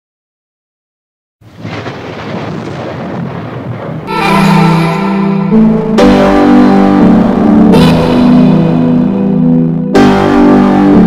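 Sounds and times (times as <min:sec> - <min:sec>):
rumbling thunder-like noise: 0:01.6 - 0:09.8.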